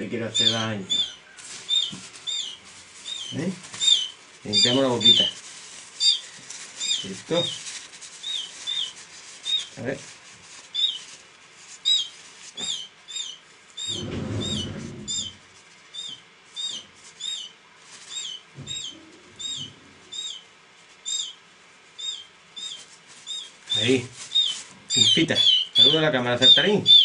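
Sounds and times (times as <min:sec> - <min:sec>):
rubbing handling noise: 0:00.0 - 0:20.0, 0:21.6 - 0:26.8
bird chick chirping: 0:00.2 - 0:05.4, 0:06.0 - 0:09.8, 0:10.7 - 0:11.2, 0:11.8 - 0:21.4, 0:22.0 - 0:27.0.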